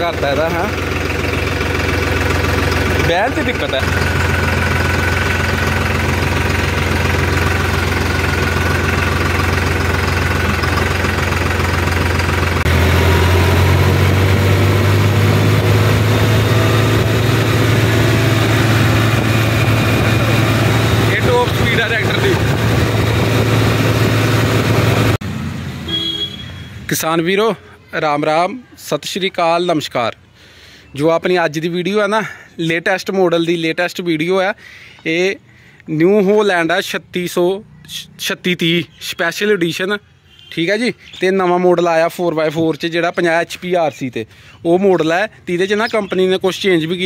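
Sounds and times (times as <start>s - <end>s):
tractor diesel engine running: 0.0s - 26.4s.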